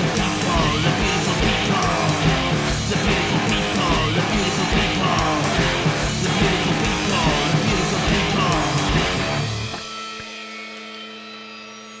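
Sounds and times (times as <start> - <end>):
electric guitar note ringing: 0.0 - 12.0.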